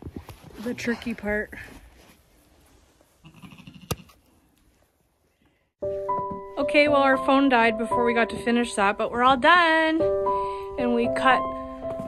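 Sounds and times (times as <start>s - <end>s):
piano music: 5.8s - 12.0s.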